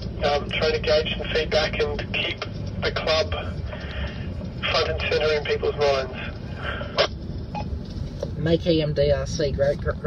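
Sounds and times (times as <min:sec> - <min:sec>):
road rumble inside moving car: 0:00.0 - 0:10.0.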